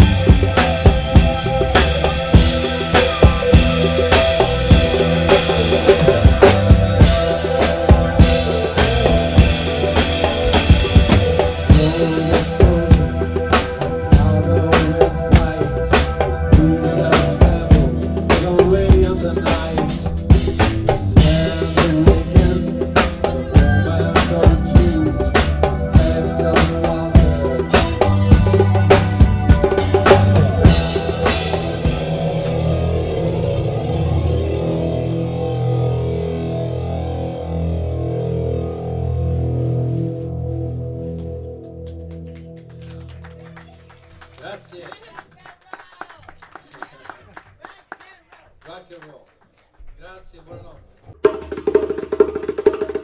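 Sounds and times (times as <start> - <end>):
djembe hand drumming: 0.0 - 32.3, 51.1 - 53.0
drum kit beat: 0.0 - 34.0, 51.1 - 53.0
sustained chords and bass: 0.0 - 44.7
live rock band playing: 0.0 - 44.9.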